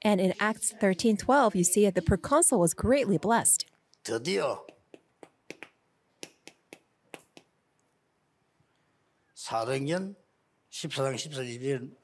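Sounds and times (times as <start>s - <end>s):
chalk tapping on a blackboard: 4.6s - 7.5s.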